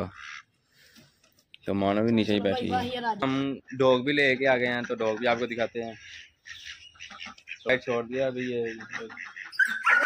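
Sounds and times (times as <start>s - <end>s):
birds chirping and squawking: 0.0s - 10.0s.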